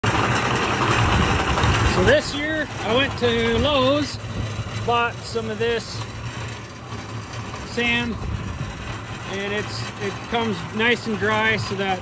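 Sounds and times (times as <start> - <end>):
cement mixer rumbling and rattling: 0.0 - 12.0.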